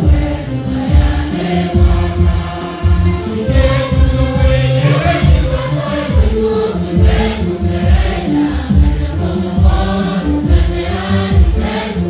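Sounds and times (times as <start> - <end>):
steady low beat: 0.0 - 11.8
congregation singing a hymn: 0.0 - 12.0
singers on microphones: 0.0 - 12.0.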